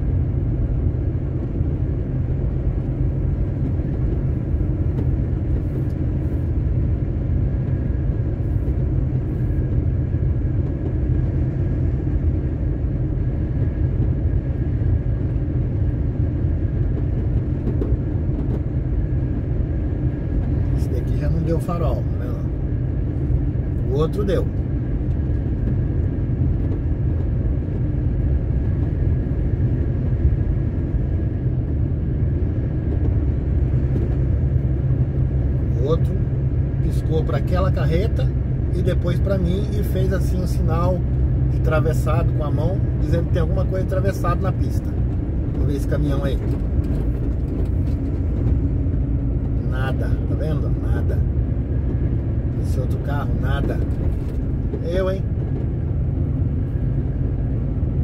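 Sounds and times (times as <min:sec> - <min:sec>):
road rumble: 0:00.0 - 0:58.0
truck diesel engine running: 0:00.0 - 0:58.0.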